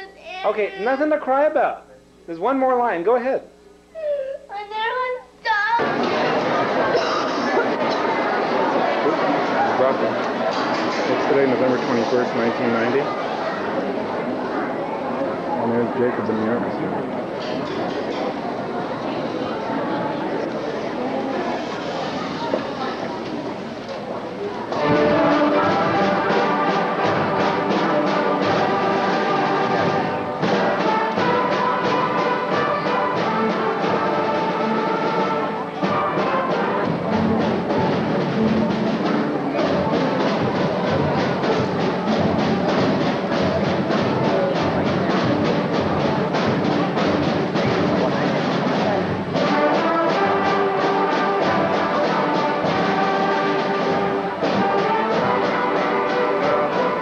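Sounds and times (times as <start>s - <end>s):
brass instruments: 5.8s - 14.6s, 24.6s - 57.0s
school orchestra playing: 5.8s - 16.6s, 24.6s - 57.0s.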